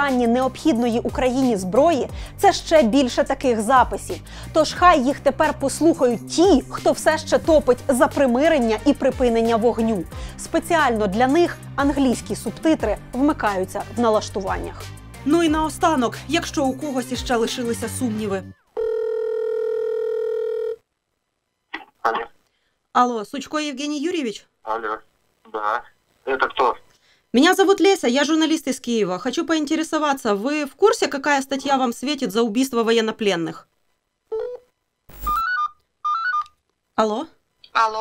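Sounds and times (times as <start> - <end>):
telephone ringback tone: 18.8 - 20.8.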